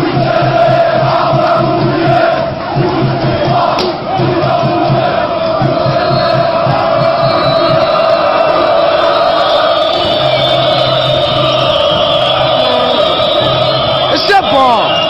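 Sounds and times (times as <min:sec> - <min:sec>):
crowd chanting in unison: 0:00.0 - 0:15.0.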